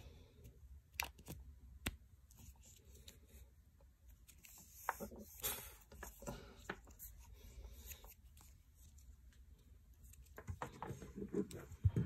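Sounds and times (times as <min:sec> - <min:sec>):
plastic cable handling clicks and rubs: 0:07.8 - 0:11.6.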